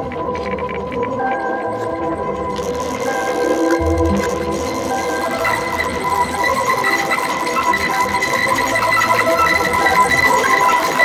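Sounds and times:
electronic ambient drone music: 0.0 - 11.0.

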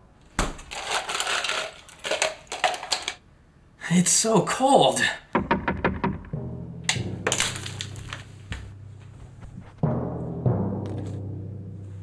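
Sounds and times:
loud hits: 5.3 - 12.0
sharp cracks: 5.4 - 8.8.

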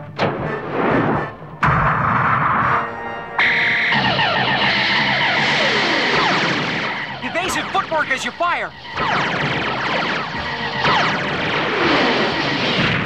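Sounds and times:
background music: 0.0 - 13.0
laser blast: 0.2 - 13.0.

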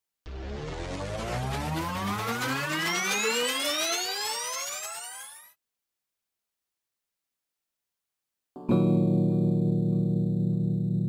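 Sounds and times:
synthesized riser tone gliding upward: 0.3 - 5.6.

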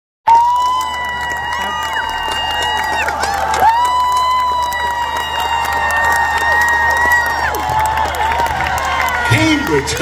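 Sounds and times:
crowd cheering and screaming: 0.2 - 10.0.

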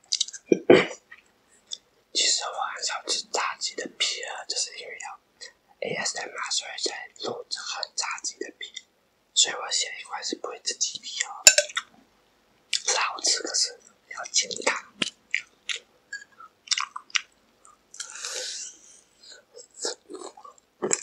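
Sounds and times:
man whispering: 2.2 - 8.8, 9.4 - 11.6, 12.8 - 15.0, 18.0 - 20.6.

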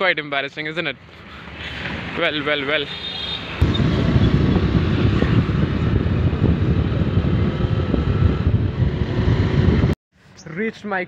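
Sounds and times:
wind buffeting microphone: 3.6 - 10.0.

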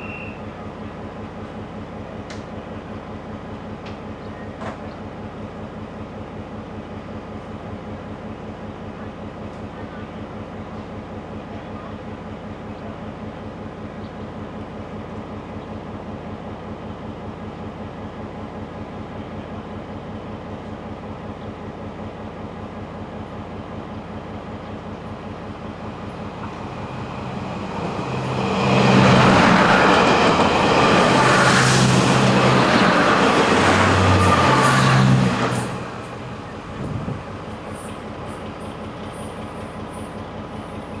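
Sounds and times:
idling diesel train rumble: 0.0 - 41.0
train passing: 10.2 - 41.0.

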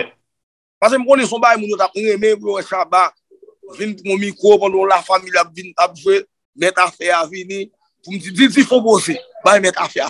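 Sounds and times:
man speaking: 0.8 - 10.0.

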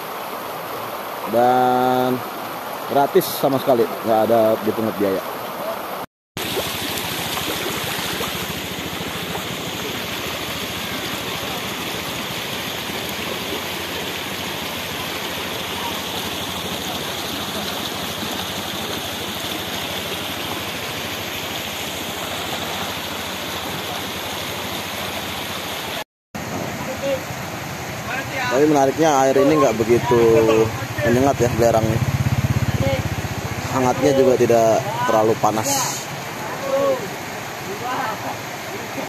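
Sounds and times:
stream rushing over stones: 0.0 - 39.0.

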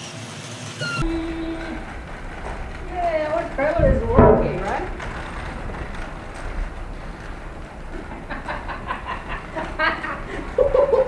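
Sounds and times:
small wheels rolling over brick: 0.0 - 11.0
voices: 1.0 - 11.0.

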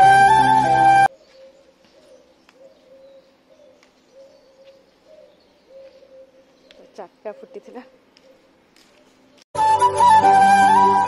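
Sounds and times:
pigeons cooing: 1.1 - 8.6.

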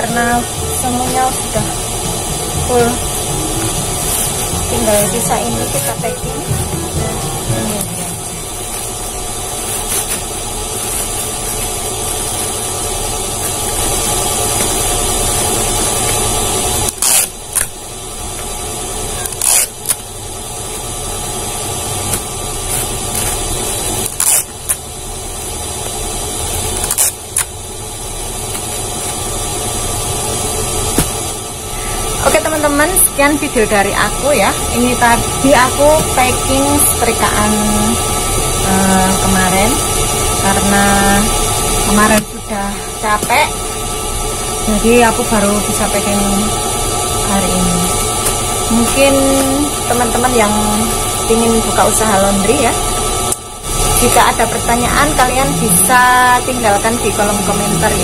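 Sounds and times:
steady mechanical hum: 0.0 - 58.0.

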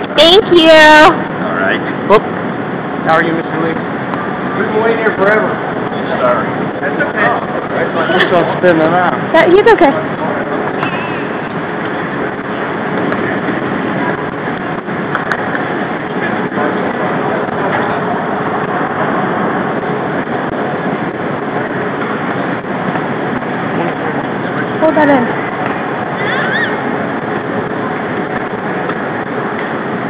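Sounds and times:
steady traffic noise: 0.0 - 30.0.

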